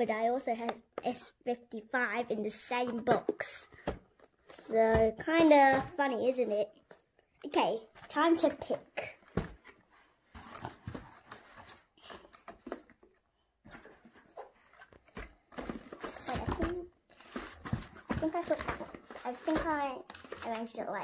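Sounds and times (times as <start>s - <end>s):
cardboard boxes shuffling: 13.6s - 20.7s
newspaper rustling: 13.6s - 21.0s.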